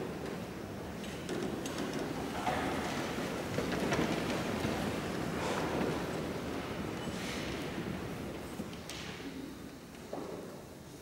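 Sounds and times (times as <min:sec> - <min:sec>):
people rustling in wooden seats: 0:00.0 - 0:10.8.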